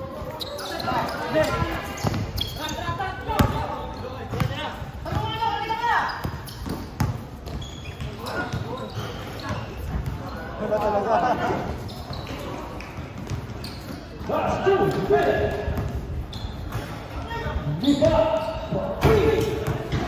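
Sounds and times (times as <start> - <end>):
people shouting and chattering: 0.0 - 20.0
basketball bouncing on hard court: 1.5 - 5.4, 6.2 - 10.2, 13.0 - 13.7.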